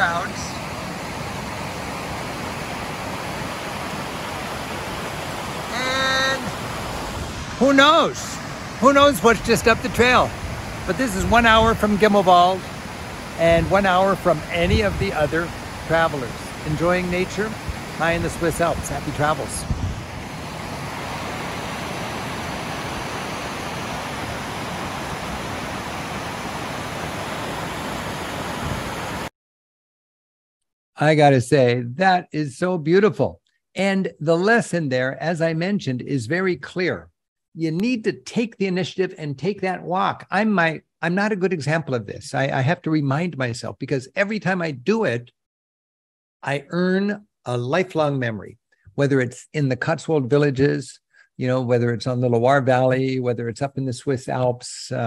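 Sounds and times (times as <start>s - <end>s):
stream rushing over rocks: 0.0s - 29.3s.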